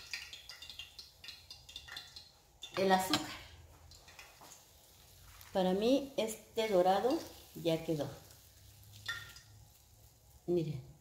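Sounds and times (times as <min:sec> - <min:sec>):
oil frying in a pan: 0:00.0 - 0:11.0.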